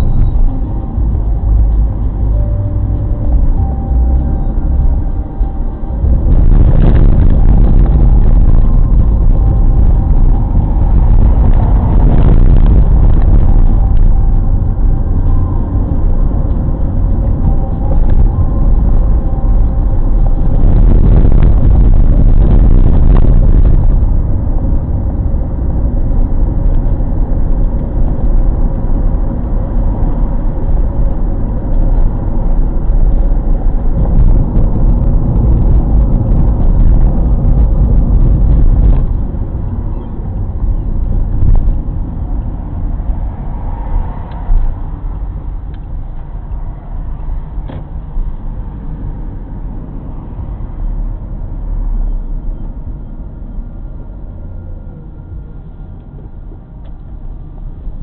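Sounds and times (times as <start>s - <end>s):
car engine and road noise: 0.0s - 58.0s.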